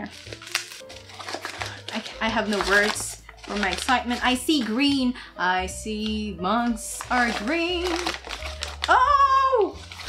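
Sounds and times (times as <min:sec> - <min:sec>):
plastic wrapping crinkling: 0:00.0 - 0:05.0, 0:06.0 - 0:10.0
background music: 0:00.0 - 0:10.0.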